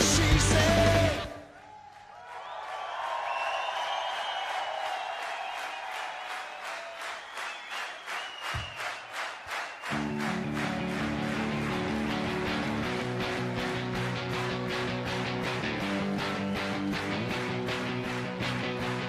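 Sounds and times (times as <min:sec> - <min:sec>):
electric guitars and bass chords: 0:00.0 - 0:01.4, 0:09.9 - 0:19.0
crowd cheering: 0:00.0 - 0:19.0.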